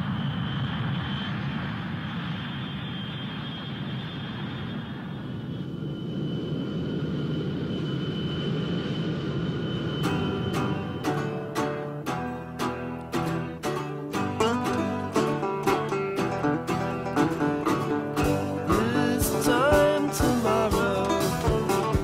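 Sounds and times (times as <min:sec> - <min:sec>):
engine rumble: 0:00.0 - 0:22.0.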